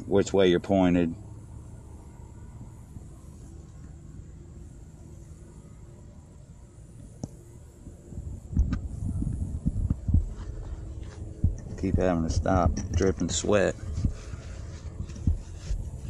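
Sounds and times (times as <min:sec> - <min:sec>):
faint low hum: 0:00.0 - 0:16.0
wind buffeting microphone: 0:07.8 - 0:16.0.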